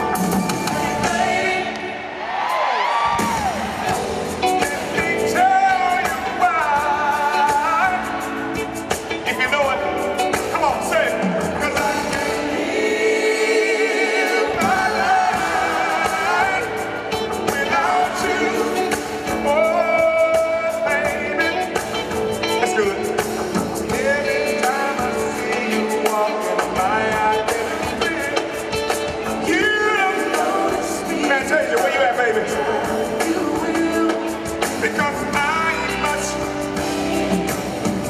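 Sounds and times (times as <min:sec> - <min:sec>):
live band playing: 0:00.0 - 0:38.0
person singing: 0:03.1 - 0:38.0.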